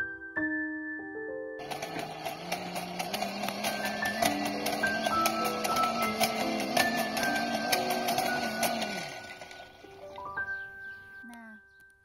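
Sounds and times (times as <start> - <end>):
soft background music: 0.0 - 1.8, 3.6 - 12.0
hand-cranked blower whirring: 1.6 - 10.4.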